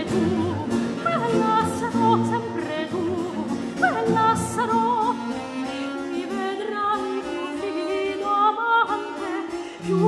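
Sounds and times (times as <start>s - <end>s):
bass violin: 0.0s - 10.0s
soprano singing: 0.0s - 10.0s.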